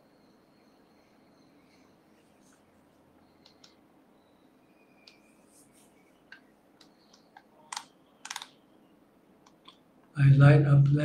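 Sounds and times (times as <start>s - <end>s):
computer keys clicking: 3.4s - 3.8s, 6.3s - 8.6s.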